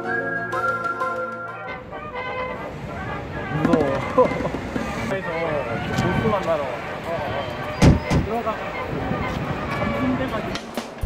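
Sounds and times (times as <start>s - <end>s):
traffic rumble: 1.6s - 11.0s.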